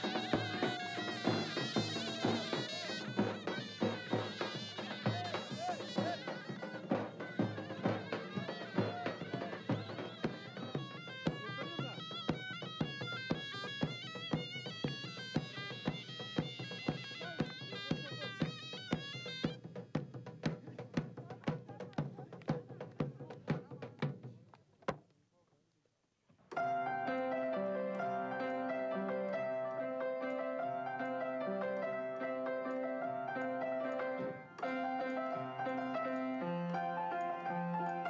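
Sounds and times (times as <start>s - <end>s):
reedy wind instrument melody: 0.0s - 19.6s, 26.6s - 38.0s
steady drum beat: 0.0s - 24.5s.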